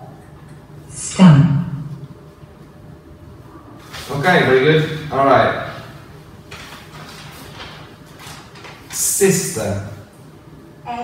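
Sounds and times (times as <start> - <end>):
low room hum: 0.0 - 11.0
paper sheets rustling: 3.8 - 4.9, 6.4 - 9.2.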